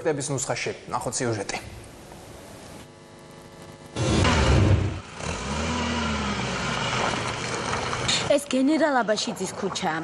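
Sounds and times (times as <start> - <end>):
car engine running: 4.0 - 8.3
car rolling through puddle: 6.6 - 8.2.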